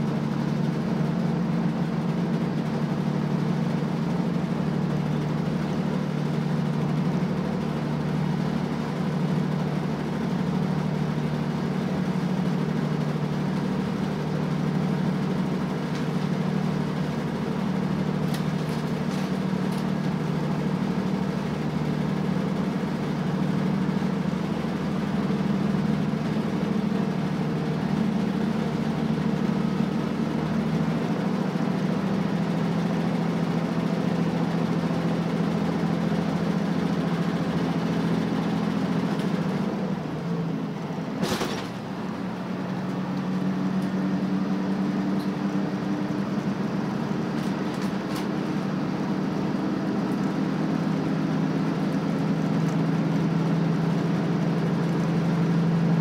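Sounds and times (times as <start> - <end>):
diesel engine droning: 0.0 - 56.0
train running noise: 0.0 - 56.0.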